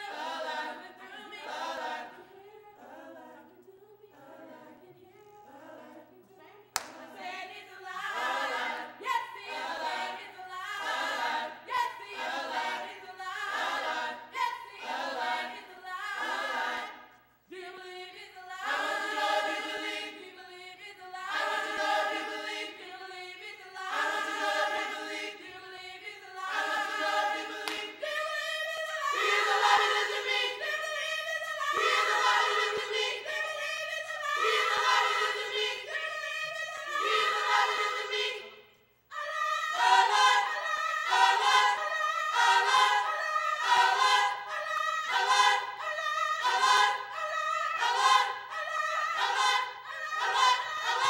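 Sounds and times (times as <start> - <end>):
gospel choir singing a cappella: 0.0 - 51.0.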